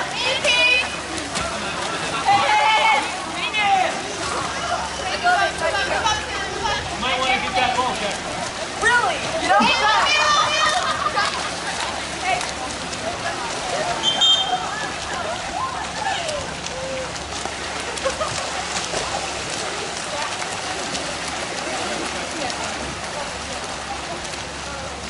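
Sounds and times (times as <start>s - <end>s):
voices in background: 0.0s - 25.0s
water splashing in a pool: 0.0s - 25.0s.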